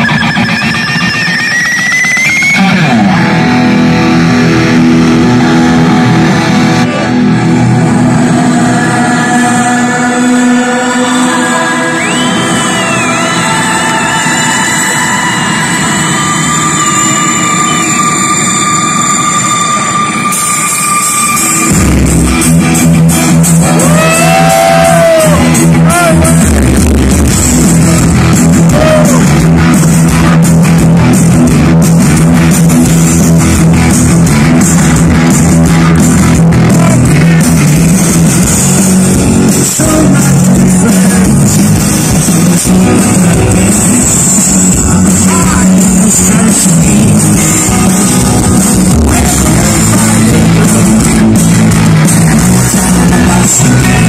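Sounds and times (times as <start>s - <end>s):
rock band playing with bass and drums: 0.0s - 54.0s
sustained guitar and keyboard drone: 0.0s - 54.0s.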